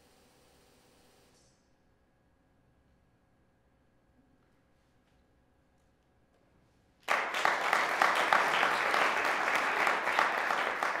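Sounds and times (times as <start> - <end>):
audience applause: 7.1 - 11.0.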